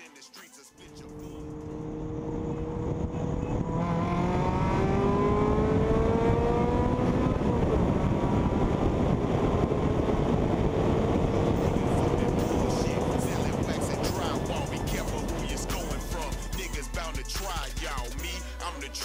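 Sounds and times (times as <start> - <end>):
road noise: 0.8 - 17.7
car engine accelerating: 0.8 - 18.1.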